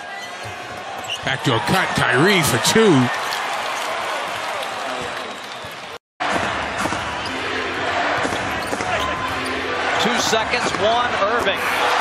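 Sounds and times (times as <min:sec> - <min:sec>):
crowd noise in arena: 0:00.0 - 0:12.0.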